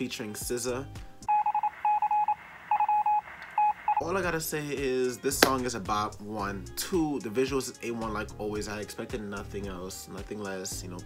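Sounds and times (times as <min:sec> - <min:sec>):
rapid electronic beeping: 0:01.3 - 0:04.1.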